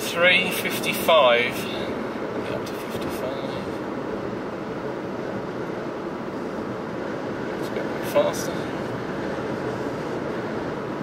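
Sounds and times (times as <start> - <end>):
tyres droning over road ridges: 0.0 - 11.0.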